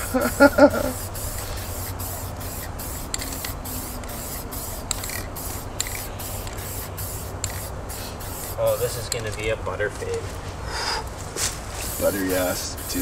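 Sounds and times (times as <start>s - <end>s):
spray paint can hissing: 0.0s - 9.2s, 11.7s - 13.0s.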